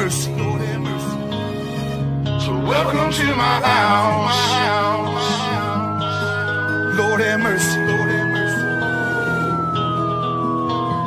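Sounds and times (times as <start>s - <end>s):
sustained chords: 0.0s - 11.0s
high tone gliding downward: 0.8s - 11.0s.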